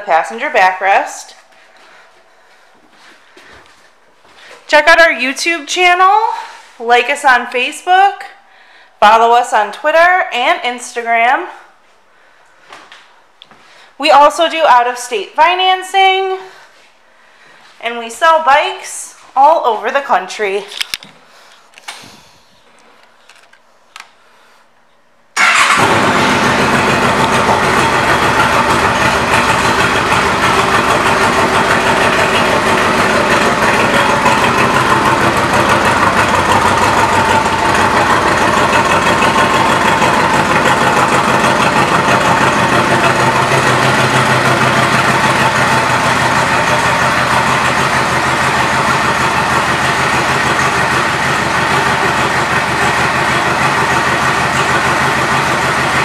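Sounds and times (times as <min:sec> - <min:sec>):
motorcycle engine starting and idling: 0:00.0 - 0:03.6, 0:25.4 - 0:56.0.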